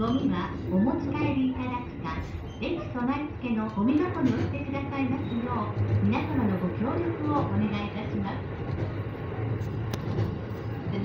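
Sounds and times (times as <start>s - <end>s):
train rumble with low hum: 0.0s - 11.0s.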